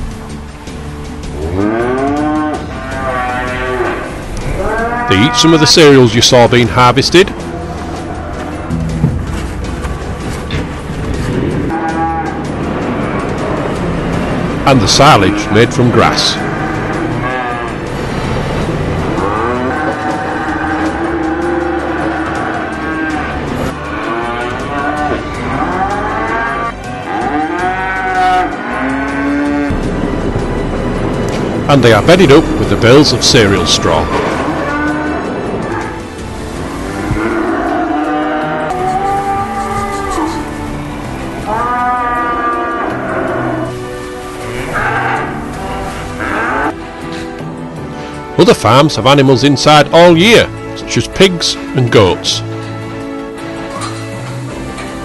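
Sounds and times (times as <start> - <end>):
soft background music: 0.0 - 55.0
cattle mooing: 1.4 - 6.0, 11.7 - 13.7, 15.1 - 29.8, 33.6 - 47.2.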